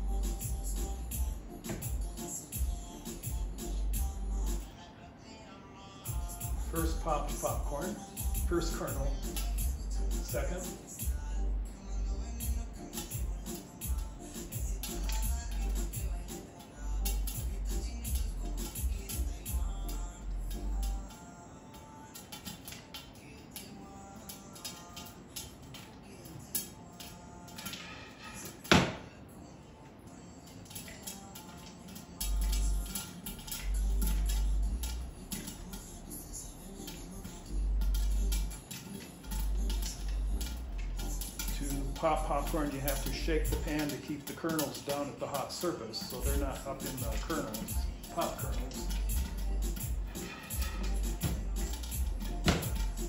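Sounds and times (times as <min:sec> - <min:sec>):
popcorn popping in a pan: 0:30.7 - 0:53.0.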